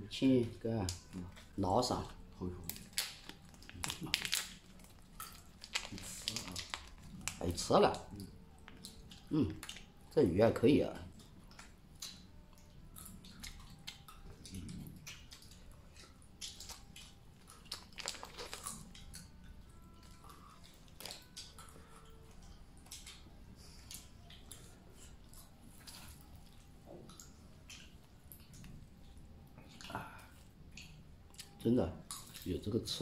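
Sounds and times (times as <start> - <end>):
chewing and crunching: 0.2 - 33.0
packaging clicks and crackles: 1.9 - 9.9, 16.4 - 22.1.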